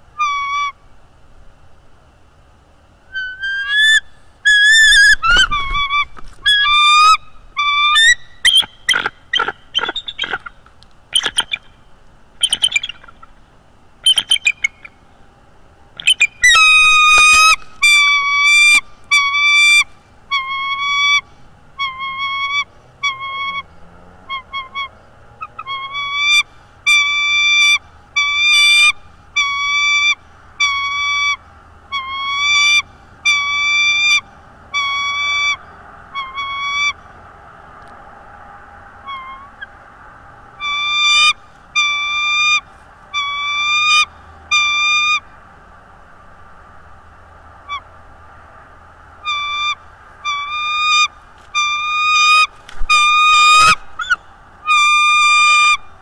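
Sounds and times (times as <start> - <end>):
eagle calling: 0.0 - 0.9, 3.1 - 13.4, 14.0 - 15.2, 15.9 - 37.2, 39.0 - 39.8, 40.6 - 45.3, 47.6 - 47.9, 49.2 - 56.0.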